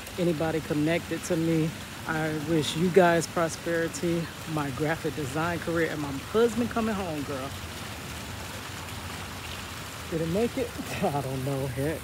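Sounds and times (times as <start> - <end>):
fountain water splashing: 0.0 - 12.0.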